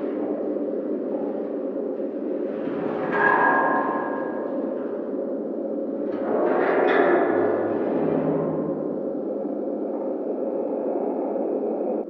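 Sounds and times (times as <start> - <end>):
low ambient drone: 0.0 - 12.0.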